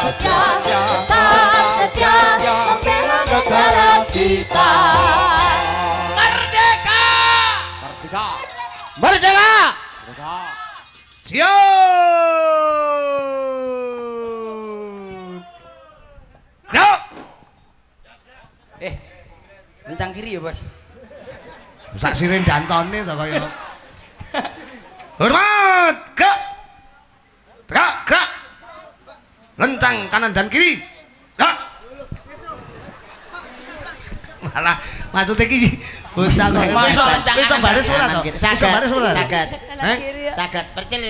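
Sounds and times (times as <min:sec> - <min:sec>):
person shouting: 0:11.6 - 0:15.9
murmur of voices: 0:30.8 - 0:41.0.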